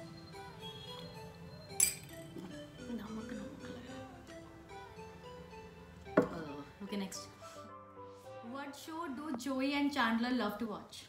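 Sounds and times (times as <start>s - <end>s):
soft background music: 0.0s - 11.0s
teaspoon clinking glass cup: 1.7s - 2.2s.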